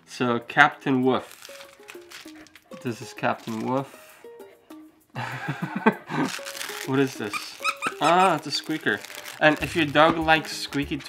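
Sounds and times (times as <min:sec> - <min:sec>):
person laughing: 0:05.2 - 0:06.4, 0:07.8 - 0:08.4
plush toy squeaking: 0:06.4 - 0:09.7.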